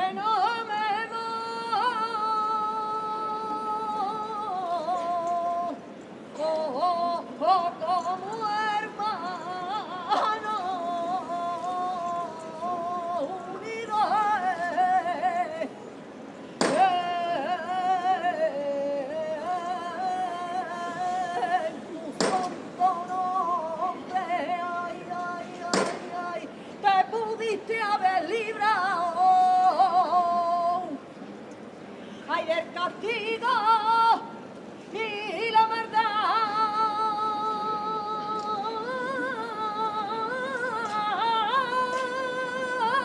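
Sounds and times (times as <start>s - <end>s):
person singing unaccompanied: 0.0s - 15.8s, 16.6s - 31.0s, 32.3s - 43.0s.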